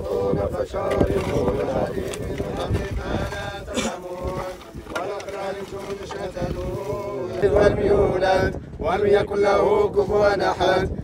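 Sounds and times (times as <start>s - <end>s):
men chanting together: 0.0s - 11.0s.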